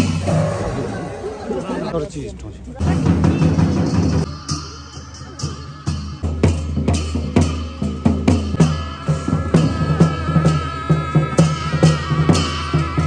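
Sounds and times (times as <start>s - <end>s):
drum and cymbal strikes: 2.8s - 13.0s
steady low drone: 4.2s - 13.0s.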